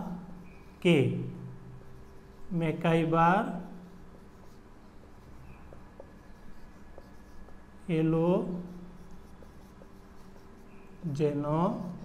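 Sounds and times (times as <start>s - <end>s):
marker pen on whiteboard: 0.0s - 12.0s.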